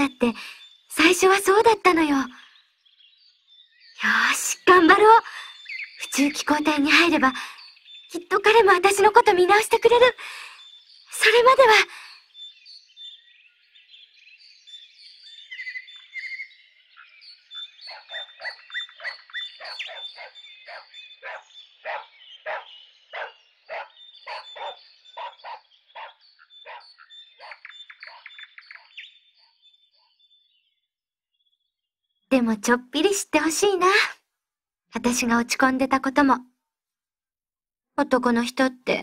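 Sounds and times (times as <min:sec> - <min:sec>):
high bird-like trills: 0:12.5 - 0:30.5
croaking calls: 0:13.1 - 0:30.5.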